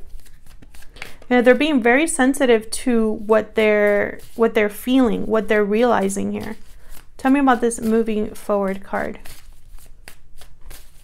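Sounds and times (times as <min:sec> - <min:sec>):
cards being shuffled: 0:00.0 - 0:01.6, 0:03.8 - 0:04.4, 0:05.8 - 0:11.0.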